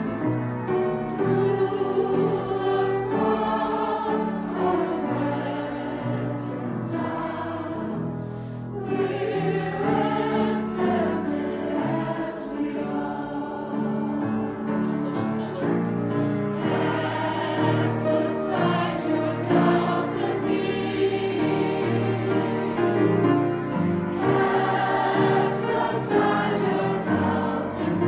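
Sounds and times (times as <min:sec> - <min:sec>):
choir singing in harmony: 0:00.0 - 0:28.0.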